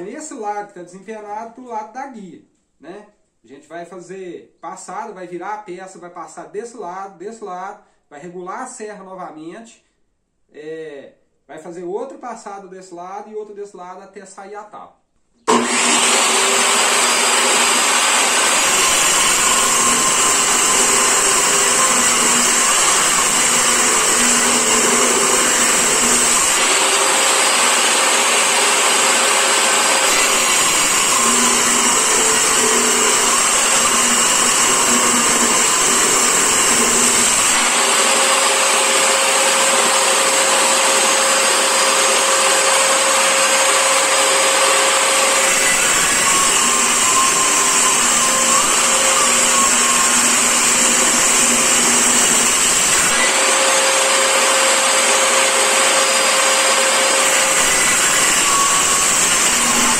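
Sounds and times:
table saw ripping wood: 0:15.5 - 0:59.9.

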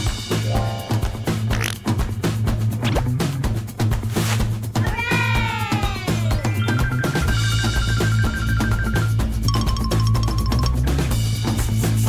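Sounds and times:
music with steady drum beat: 0:00.0 - 0:12.0
long cat-like meow: 0:04.8 - 0:06.2.

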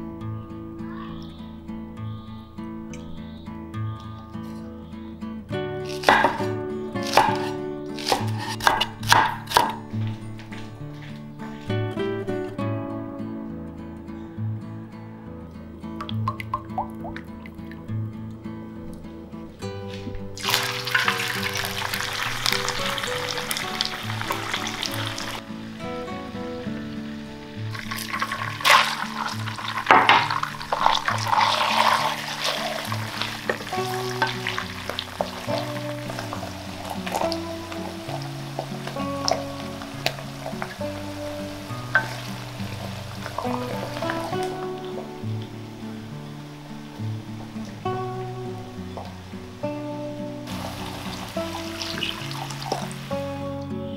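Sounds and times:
background music: 0:00.0 - 0:53.9
hot oil sizzling in a wok: 0:20.4 - 0:53.4.

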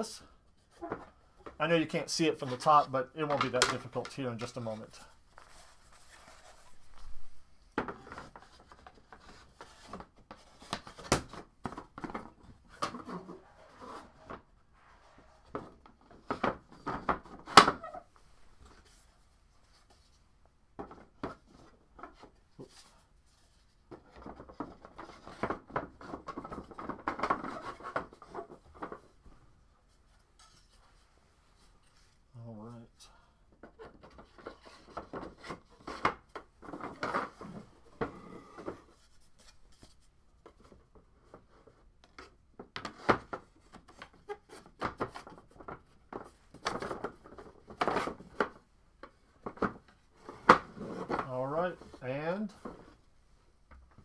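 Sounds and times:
wooden panels clicking and scraping: 0:02.4 - 0:04.8, 0:33.6 - 0:53.0.

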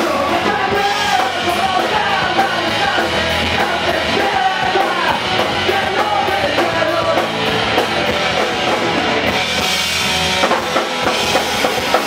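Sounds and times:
drum kit hits: 0:00.0 - 0:12.0
electric bass: 0:00.0 - 0:12.0
electric guitars: 0:00.0 - 0:12.0.

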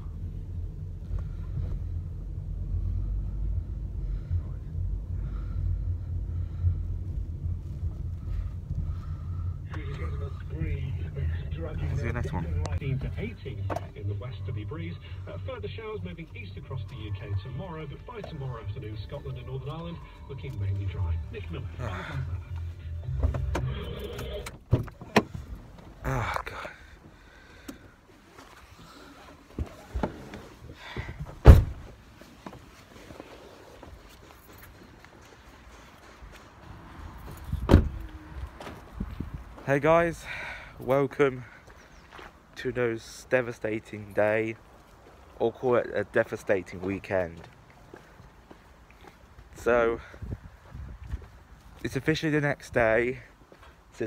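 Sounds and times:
car engine and road rumble: 0:00.0 - 0:54.0.

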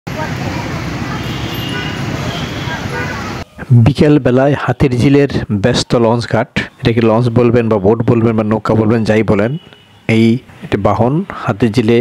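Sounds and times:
engine and traffic noise: 0:00.0 - 0:12.0.

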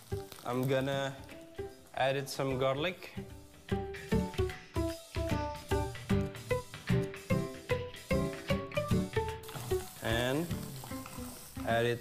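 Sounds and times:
background music: 0:00.0 - 0:12.0
garlic sizzling in a pan: 0:00.0 - 0:12.0.

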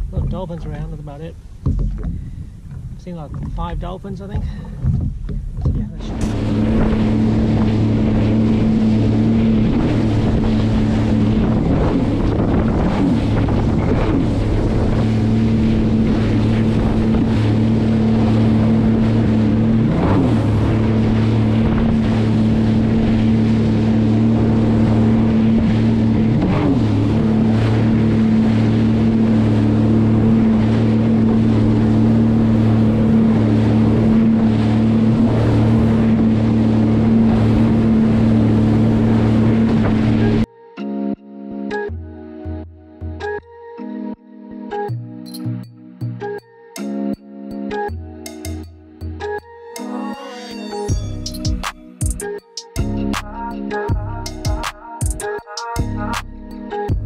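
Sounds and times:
wind on microphone: 0:00.0 - 0:40.5
jet ski engine running: 0:00.0 - 0:42.1, 0:50.6 - 0:57.0.

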